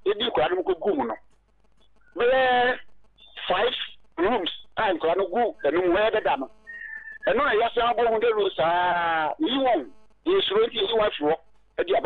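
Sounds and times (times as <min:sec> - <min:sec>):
person talking: 0:00.0 - 0:01.3, 0:02.2 - 0:12.0.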